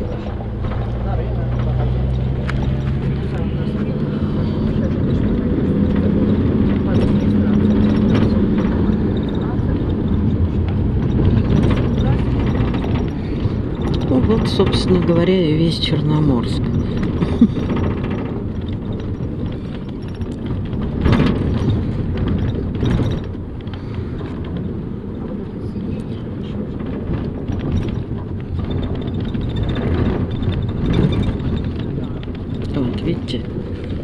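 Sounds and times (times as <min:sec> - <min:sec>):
bus engine and road rumble: 0:00.0 - 0:34.0.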